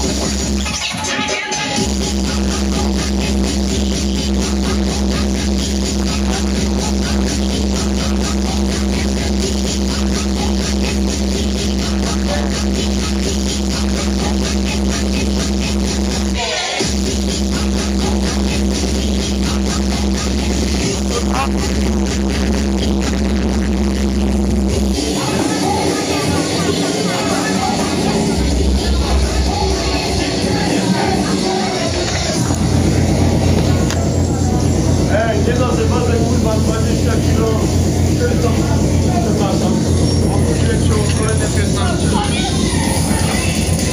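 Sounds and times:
fast dance music with heavy bass: 0:00.0 - 0:43.9.

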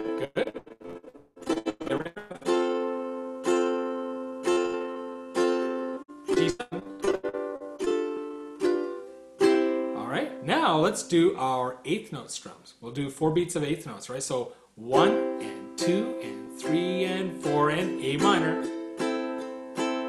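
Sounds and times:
ukulele strumming chords: 0:00.0 - 0:11.5, 0:14.8 - 0:20.0.

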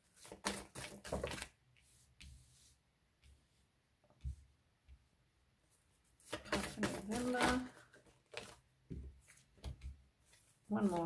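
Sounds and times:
cards sliding and tapping: 0:00.2 - 0:02.4.

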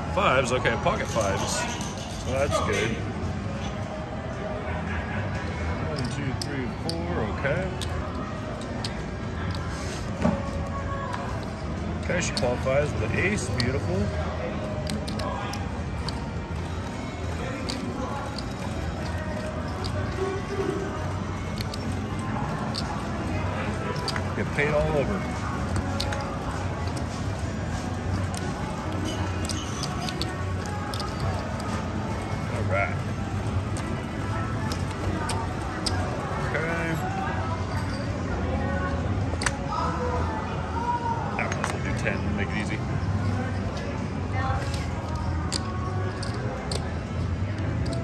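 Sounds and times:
background music: 0:00.0 - 0:48.0
indistinct chatter: 0:00.0 - 0:48.0.

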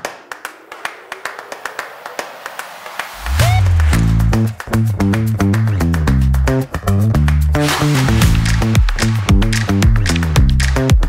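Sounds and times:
people clapping: 0:00.0 - 0:11.0.

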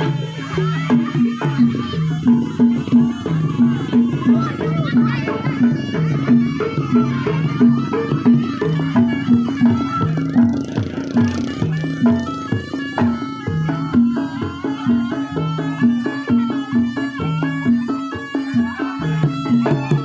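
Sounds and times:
hand drums beating rhythm: 0:00.0 - 0:20.0.

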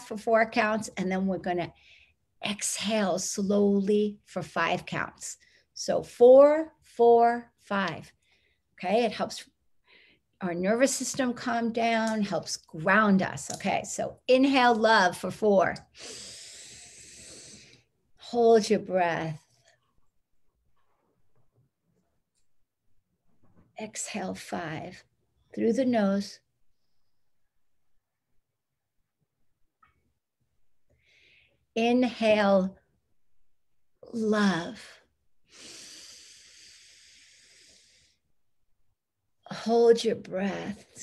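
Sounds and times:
woman inhaling through nose: 0:16.0 - 0:17.8, 0:35.5 - 0:38.2.

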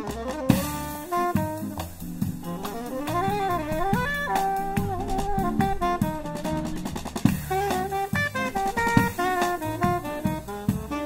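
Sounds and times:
drum kit: 0:00.0 - 0:11.0
saxophone melody: 0:00.0 - 0:11.0
upright double bass: 0:00.0 - 0:11.0.

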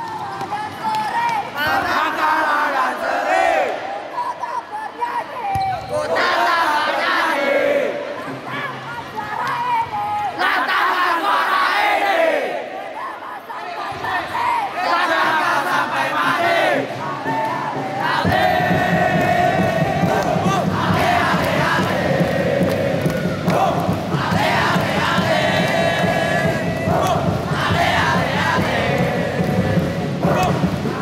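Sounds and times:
crowd shouting and chanting: 0:00.0 - 0:31.0.

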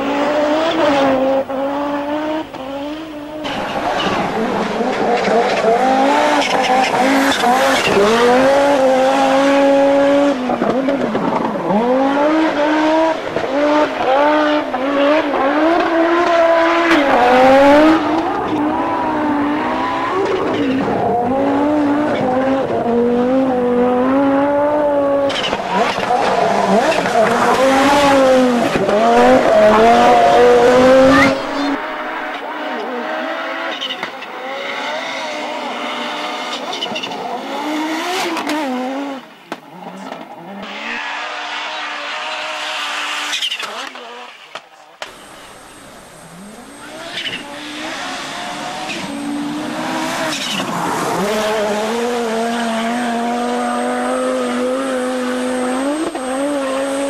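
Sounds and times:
rally car engines at full throttle: 0:00.0 - 0:57.0.

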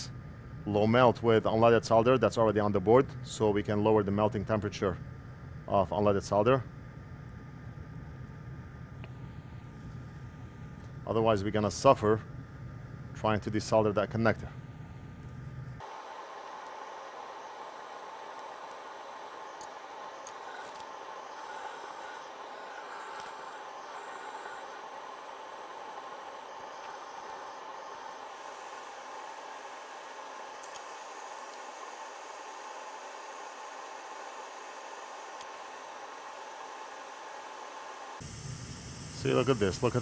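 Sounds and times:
extractor fan rushing hiss: 0:15.8 - 0:40.0.

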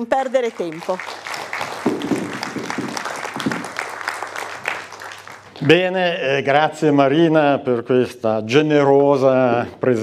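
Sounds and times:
audience applauding: 0:00.0 - 0:06.2.

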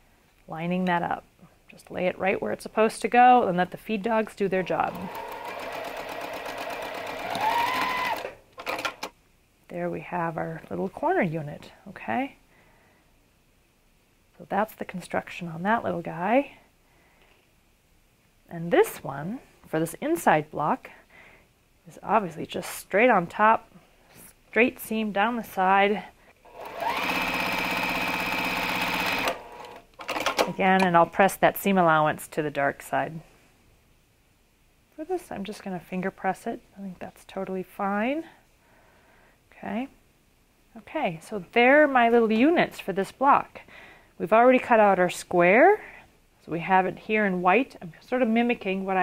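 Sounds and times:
sewing machine stitching: 0:04.6 - 0:09.1, 0:26.5 - 0:30.9.

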